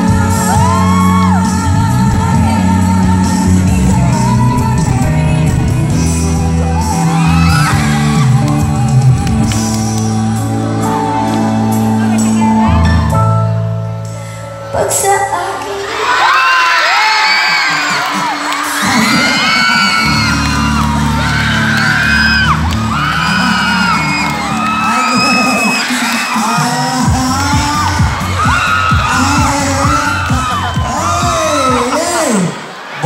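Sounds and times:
crowd shrieking and whooping: 0.0 - 13.3, 15.8 - 33.0
steady music beat: 0.0 - 14.2, 18.0 - 32.4
loud music over pa system: 0.0 - 16.1, 17.4 - 33.0.

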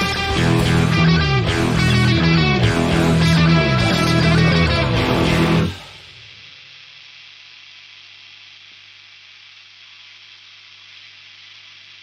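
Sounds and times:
electric guitar and bass chord: 0.0 - 6.3
amplifier hiss and hum: 0.0 - 12.0.

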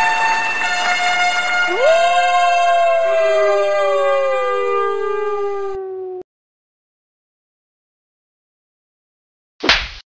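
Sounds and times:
wailing tone gliding downward: 1.6 - 6.2.

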